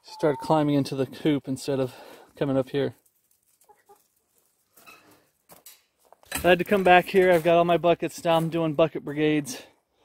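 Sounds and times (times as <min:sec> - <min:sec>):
chicken clucks: 0:03.6 - 0:04.1.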